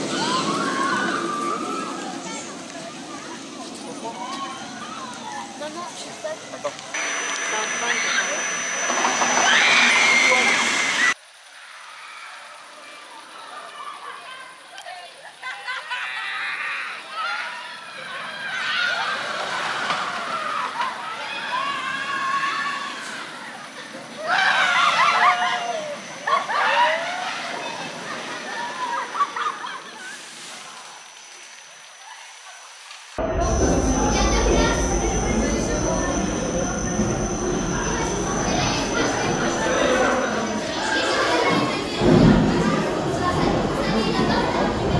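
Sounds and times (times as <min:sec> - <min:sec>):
riders screaming and whooping: 0:00.0 - 0:02.3, 0:08.0 - 0:12.7, 0:15.8 - 0:30.2
roller coaster train rushing past: 0:00.0 - 0:11.2, 0:33.2 - 0:44.9
steady low rumble: 0:33.2 - 0:40.8.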